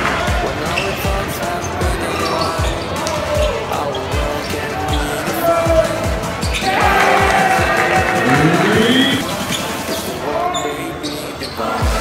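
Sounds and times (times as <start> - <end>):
crowd voices: 0.0 - 12.0
deep bass music note: 8.2 - 9.2.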